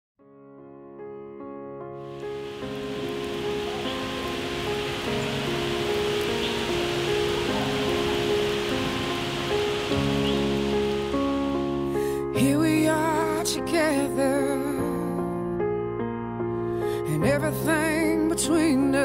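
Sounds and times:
soft music with sustained chords: 1.4s - 19.0s
steady rain falling: 2.1s - 11.8s.

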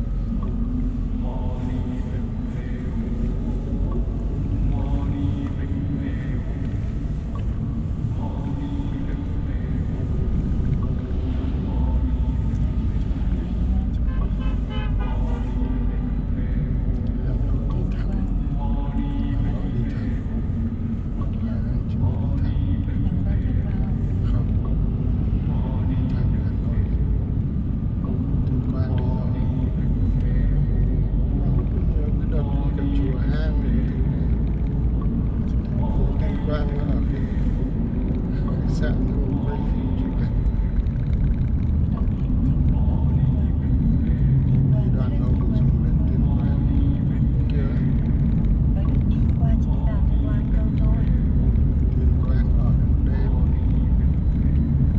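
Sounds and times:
voices talking: 0.0s - 27.2s, 28.0s - 54.9s
car cabin road rumble: 0.0s - 54.9s.

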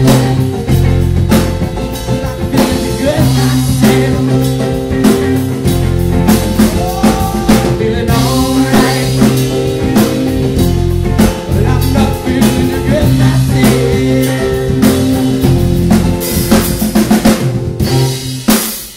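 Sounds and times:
drum kit steady beat: 0.0s - 18.9s
live rock band playing: 0.0s - 18.9s.

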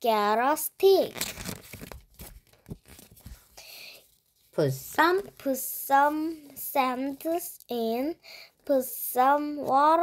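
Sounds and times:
paper rustling: 1.0s - 6.5s
paper sticker being peeled: 1.1s - 3.4s.

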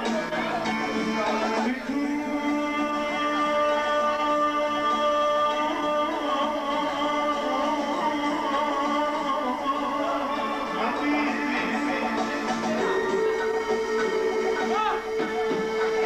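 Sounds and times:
man singing into a microphone: 0.0s - 14.0s.

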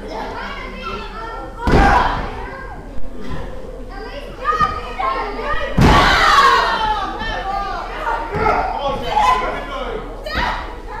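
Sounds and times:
spectators shouting: 5.8s - 9.6s.

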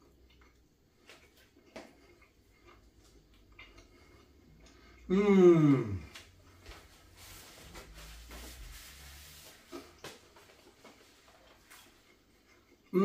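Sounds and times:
faint chewing: 0.0s - 5.1s, 9.7s - 13.0s.

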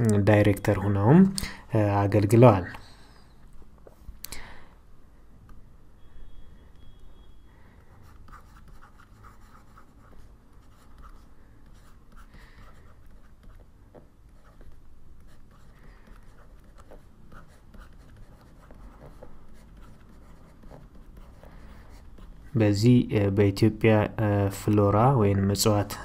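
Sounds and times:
stylus scratching while writing: 8.0s - 22.6s.

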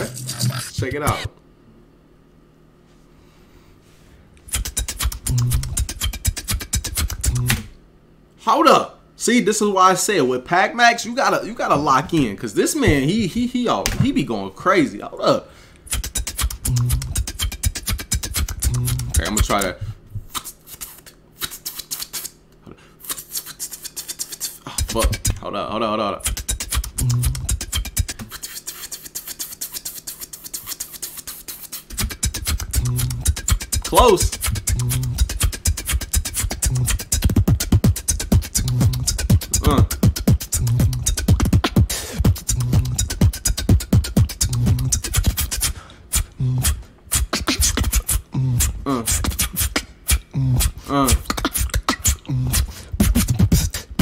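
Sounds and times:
person beatboxing: 0.0s - 1.3s, 4.4s - 7.7s, 11.6s - 14.2s, 15.8s - 22.4s, 23.0s - 25.4s, 26.1s - 54.0s
pitched vocal glides: 0.0s - 1.3s, 4.5s - 7.7s, 15.9s - 19.9s, 23.3s - 25.5s, 26.1s - 28.7s, 31.8s - 54.0s
deep bass tone: 5.2s - 6.0s, 7.1s - 7.7s, 16.6s - 17.3s, 18.6s - 19.4s, 27.0s - 27.6s, 32.6s - 45.4s.

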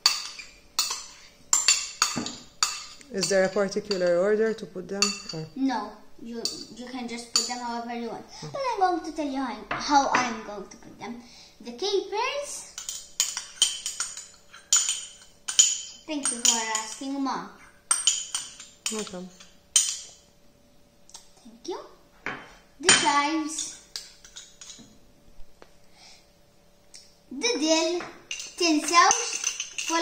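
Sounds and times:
metal spoon clinking ceramic: 0.0s - 4.1s, 5.0s - 5.5s, 12.8s - 17.1s, 17.9s - 20.2s, 22.9s - 24.9s, 28.3s - 30.0s
spoon clinking on ceramic bowl: 22.3s - 24.9s.

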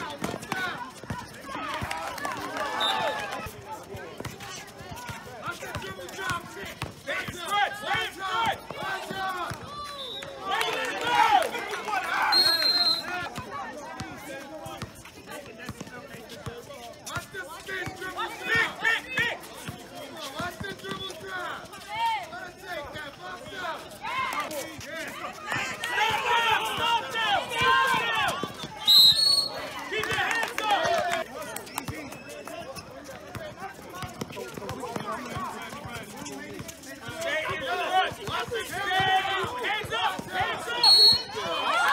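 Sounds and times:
people calling out and talking: 0.0s - 41.9s
basketball dribbling: 33.1s - 37.2s.

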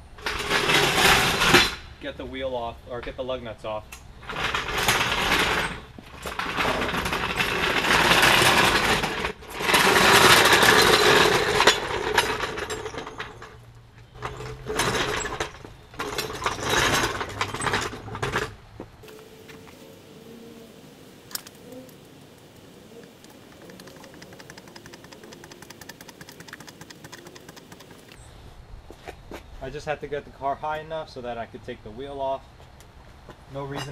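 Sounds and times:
floor jack rattling on asphalt: 0.1s - 1.9s, 4.2s - 18.8s, 23.3s - 28.2s
faint even ticking: 23.0s - 28.2s.

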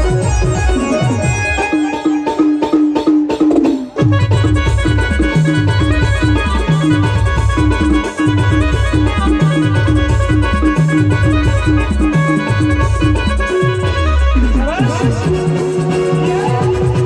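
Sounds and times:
electronic keyboard riff: 0.0s - 17.0s.

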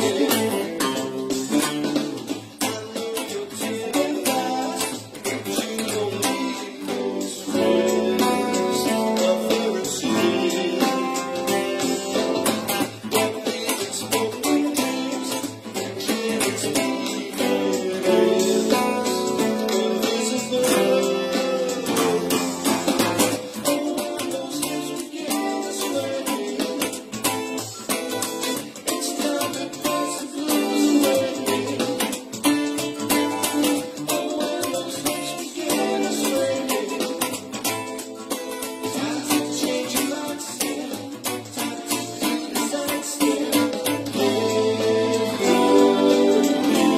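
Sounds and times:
electric guitar funk rhythm: 0.0s - 46.9s
funk-soul band recording: 0.0s - 46.9s
steady drum beat: 0.0s - 46.9s.

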